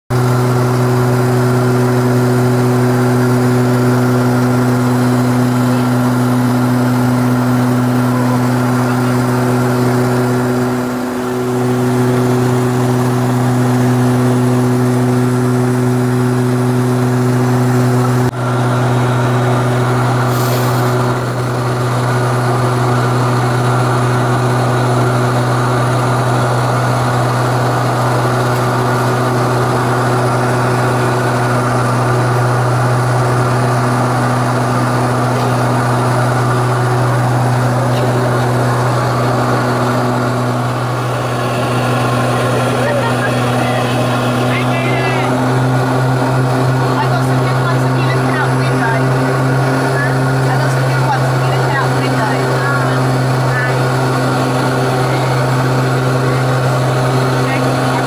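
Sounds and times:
airliner engine drone in cabin: 0.1s - 58.0s.

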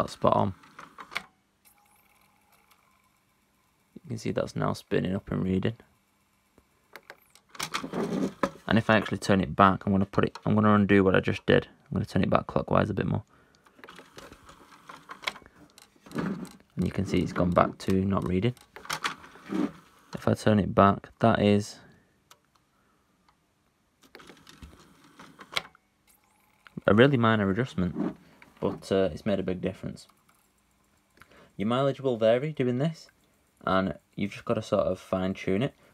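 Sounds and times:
cd player ticking and whirring: 0.0s - 9.2s, 13.5s - 20.3s, 29.2s - 35.9s
disc mechanism clicks: 0.5s - 3.1s, 6.5s - 8.6s, 13.6s - 19.4s, 24.0s - 25.8s.

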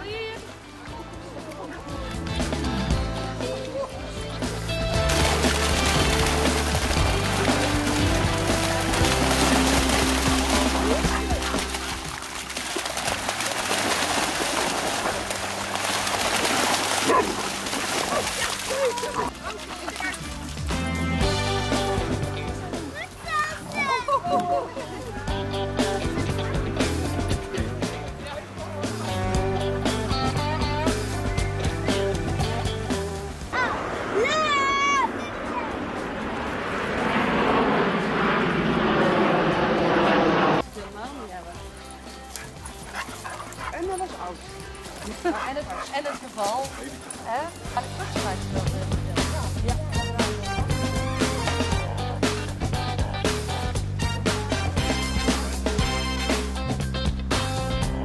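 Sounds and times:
dogs splashing through water: 4.9s - 20.8s, 40.6s - 52.4s
steady rushing noise: 33.3s - 40.6s.

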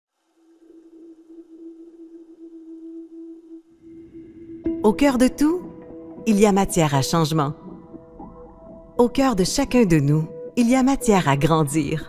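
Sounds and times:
pure held drone tone: 0.1s - 11.9s.

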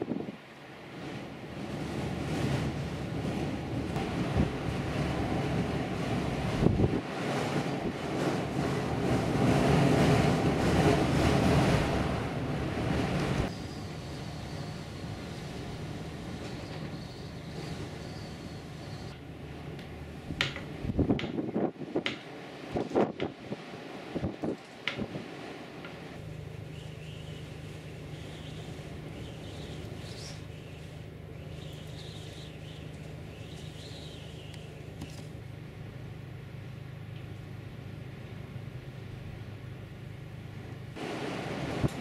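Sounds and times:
gusty wind on microphone: 0.0s - 19.2s, 20.1s - 26.2s, 41.0s - 42.0s.

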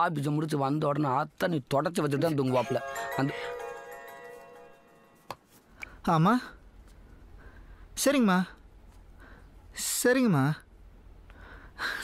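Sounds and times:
mobile phone ringtone: 2.3s - 5.3s.

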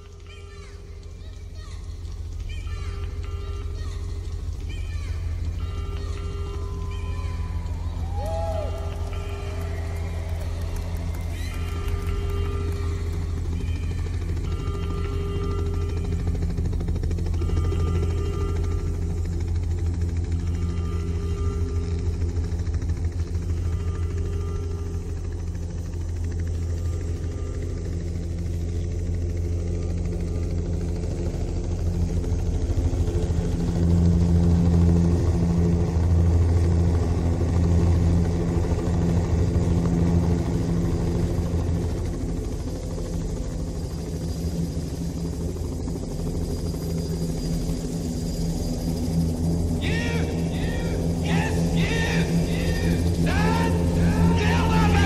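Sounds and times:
helicopter rotor drone: 0.0s - 55.0s.

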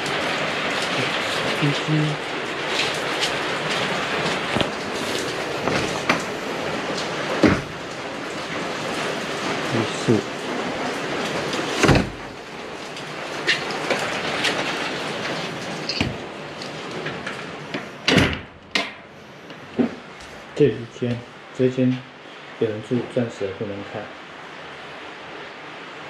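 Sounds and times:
rain hissing on roof: 0.0s - 26.0s
knocks: 7.4s - 7.8s
loud thump: 7.4s - 7.8s.

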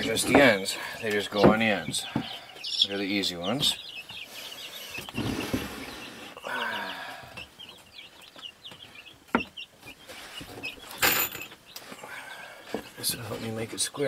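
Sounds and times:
boards clattering: 0.0s - 2.3s
birds chirping: 0.0s - 14.0s.

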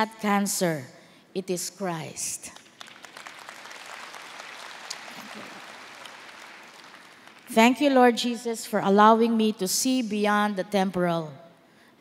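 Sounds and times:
audience applauding: 2.7s - 7.5s.

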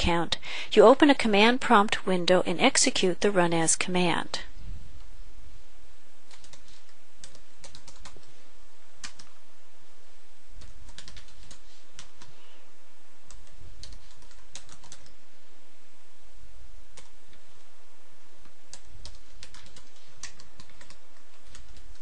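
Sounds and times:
keyboard typing: 6.3s - 8.3s, 9.0s - 9.4s, 10.6s - 12.4s, 13.3s - 15.2s, 16.9s - 17.4s, 18.7s - 22.0s.

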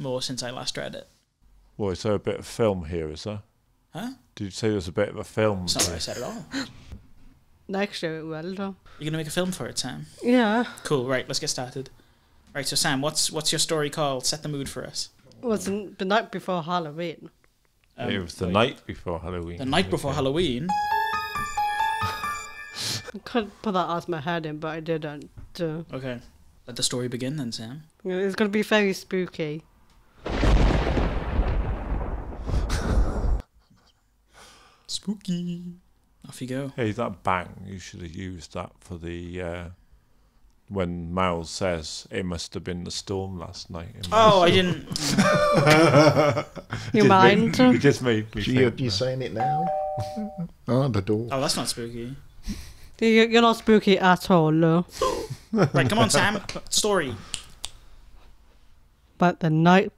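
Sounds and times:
thunderclap with deep rumble: 30.3s - 33.4s
person speaking: 44.0s - 46.0s, 46.8s - 50.6s, 55.0s - 57.4s.

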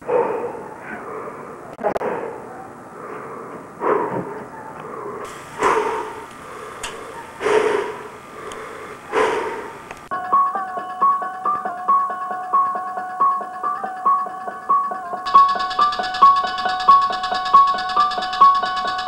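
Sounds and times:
repeating keyboard melody: 10.1s - 19.0s.

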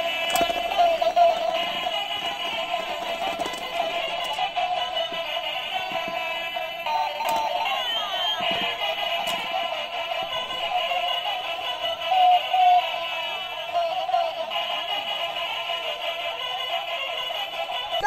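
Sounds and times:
electronic toy melody: 0.0s - 18.0s.

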